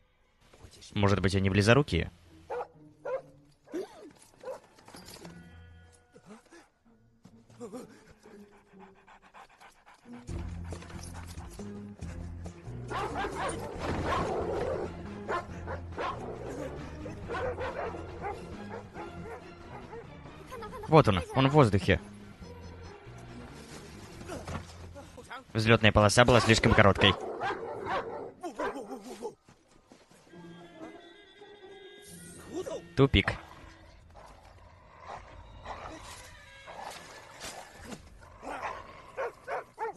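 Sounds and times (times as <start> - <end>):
dog panting rapidly: 8.2 - 11.7
dog noise: 17.2 - 20.0, 26.5 - 29.0, 38.5 - 39.9.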